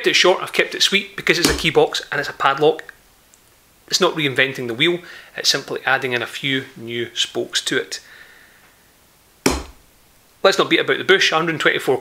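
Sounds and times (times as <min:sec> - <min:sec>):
metal box knocking on table: 0:09.5 - 0:09.8.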